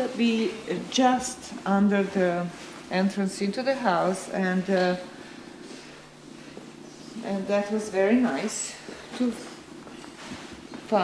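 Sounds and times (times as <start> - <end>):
low even hum: 0.0 - 11.0.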